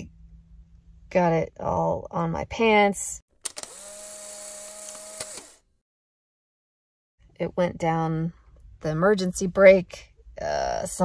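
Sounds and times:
motor click: 3.4 - 5.6
electric motor whining: 3.5 - 5.6.

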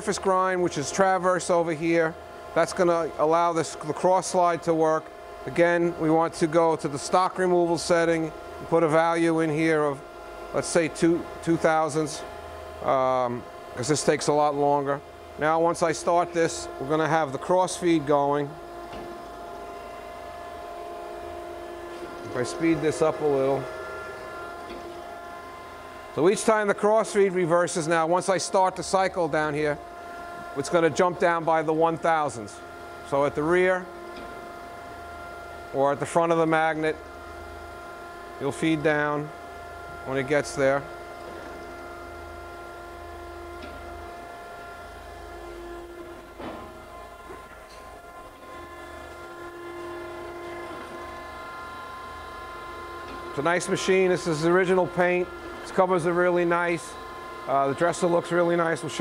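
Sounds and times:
high whine of grinder: 0.0 - 59.0
surface grinder humming: 5.9 - 59.0.

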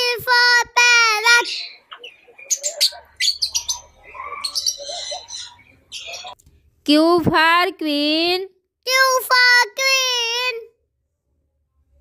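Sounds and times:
small parrots chirping: 1.3 - 6.4.

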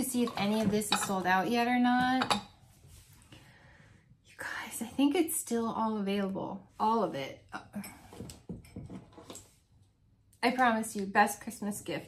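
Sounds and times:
woman whispering: 4.3 - 5.1.

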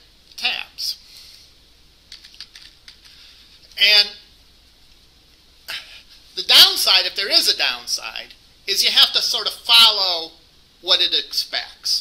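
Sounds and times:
faint keyboard typing: 2.1 - 3.2.

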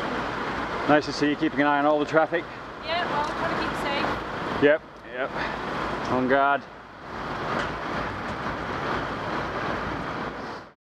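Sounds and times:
road traffic noise: 0.0 - 10.8.

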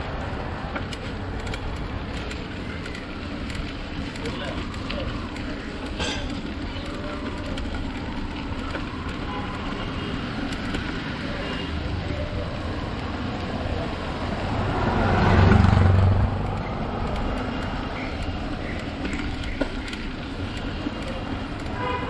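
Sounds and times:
street traffic rumble: 0.0 - 22.0
vehicle passing by: 10.9 - 18.5.

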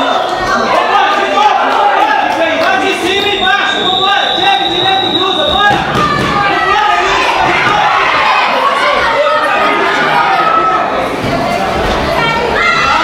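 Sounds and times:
voices calling in echoing hall: 0.0 - 13.0.

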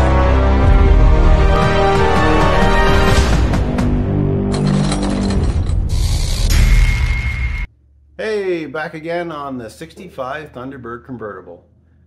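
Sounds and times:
theme music: 0.0 - 8.7
ratchet-like sound effects: 4.6 - 7.2.

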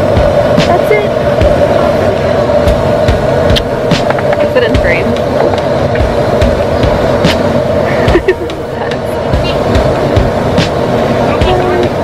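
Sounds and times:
constant hum: 0.0 - 12.0
jet engine drone and airflow: 0.0 - 12.0.

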